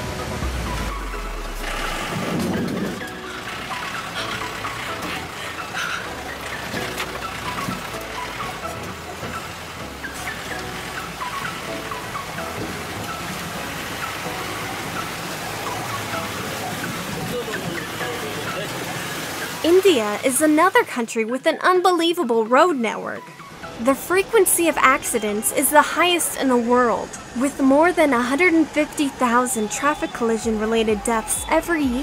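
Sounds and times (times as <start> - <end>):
background music with low bass line: 0.0 - 20.4, 22.3 - 32.0.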